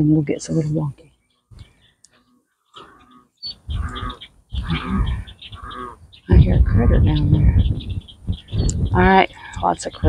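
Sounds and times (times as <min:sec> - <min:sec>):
short repeated animal calls: 0:01.3 - 0:06.2.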